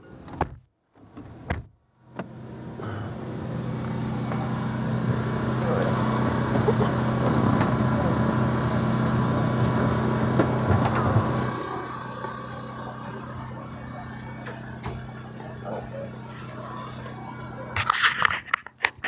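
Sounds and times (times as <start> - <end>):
vehicle cabin hum: 1.3 - 18.7.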